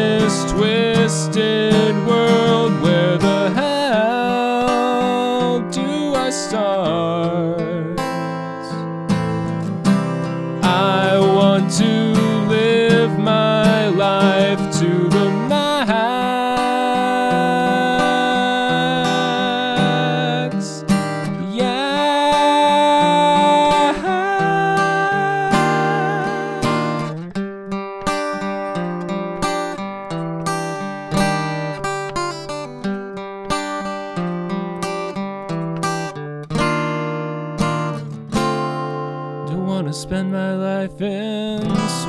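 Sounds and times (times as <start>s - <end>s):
man singing wordless notes: 0.0s - 8.8s, 10.6s - 27.2s, 39.5s - 42.0s
acoustic guitar strumming: 0.0s - 42.0s.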